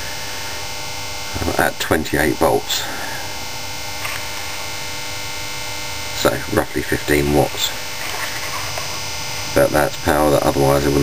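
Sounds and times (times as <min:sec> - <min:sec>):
electrical hum with faint whine: 0:00.0 - 0:11.0.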